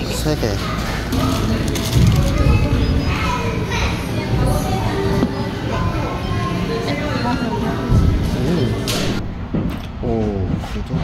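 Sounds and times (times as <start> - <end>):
children's voices and chatter: 0.0 - 9.2.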